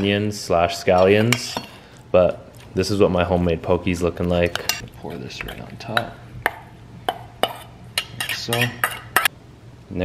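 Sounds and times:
metal spoon clinking on steel bowl: 0:05.4 - 0:09.3.

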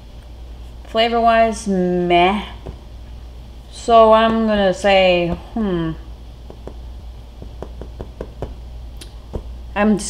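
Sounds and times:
fingers tapping on a countertop: 0:06.5 - 0:06.8, 0:07.4 - 0:08.6.

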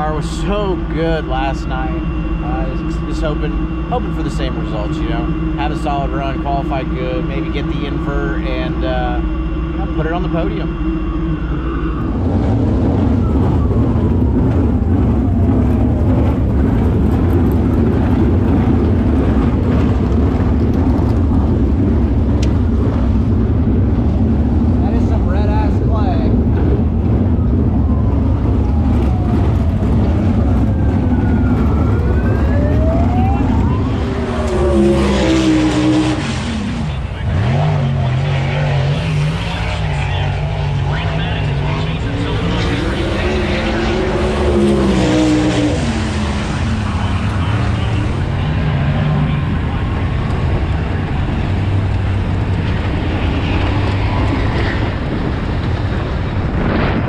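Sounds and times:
engine revving: 0:00.0 - 0:57.0
race car engines rumbling: 0:00.0 - 0:57.0.

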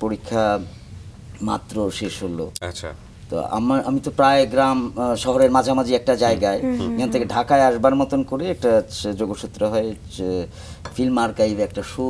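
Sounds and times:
man speaking: 0:06.2 - 0:07.8.

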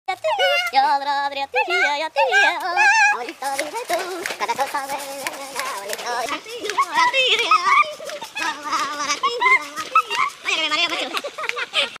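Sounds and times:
men yelling and shrieking: 0:01.8 - 0:11.6.

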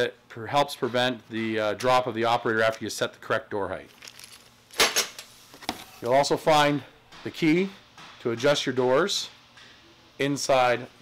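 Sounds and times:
faint plastic rustling: 0:03.8 - 0:04.6.

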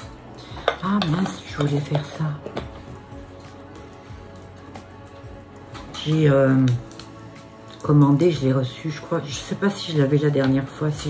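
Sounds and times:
cosmetic containers clicking: 0:00.0 - 0:08.4.

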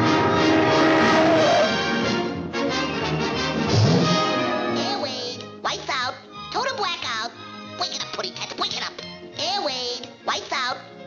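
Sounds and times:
cartoon orchestral music: 0:00.0 - 0:11.0.

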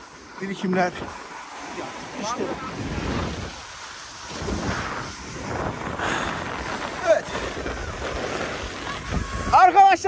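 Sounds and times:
snowboard scraping over snow: 0:00.0 - 0:10.0
wind rushing over microphone: 0:00.8 - 0:10.0.

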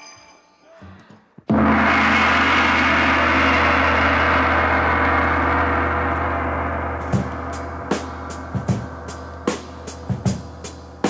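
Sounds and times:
gong ringing: 0:01.5 - 0:11.0
low hum: 0:01.5 - 0:11.0.

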